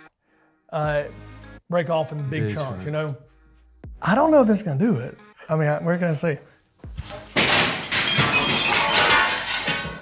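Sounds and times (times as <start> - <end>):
plate glass shattering: 7.0 - 10.0.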